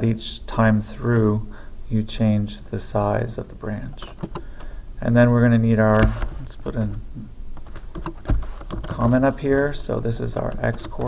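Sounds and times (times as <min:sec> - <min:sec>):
keyboard key presses: 0:07.9 - 0:09.3.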